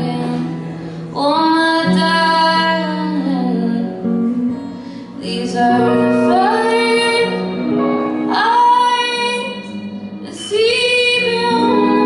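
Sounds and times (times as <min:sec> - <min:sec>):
acoustic guitar: 0:00.0 - 0:12.0
woman singing: 0:00.0 - 0:12.0.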